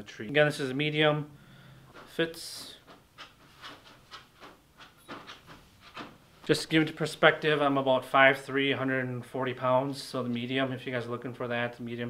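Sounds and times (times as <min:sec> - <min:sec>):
hoodie fabric rustling: 0:02.8 - 0:06.9.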